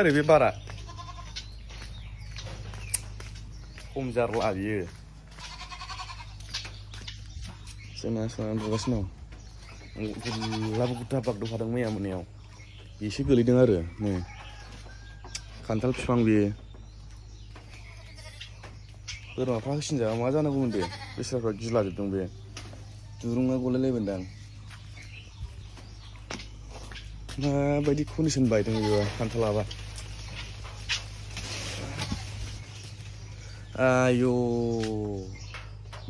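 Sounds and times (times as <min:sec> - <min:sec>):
steady low rumble: 0:00.0 - 0:10.1, 0:22.2 - 0:28.5
goats bleating: 0:00.6 - 0:01.6, 0:05.2 - 0:06.5, 0:08.3 - 0:09.2, 0:10.0 - 0:11.3, 0:17.7 - 0:18.6, 0:20.5 - 0:21.7, 0:28.4 - 0:29.8, 0:31.6 - 0:32.7.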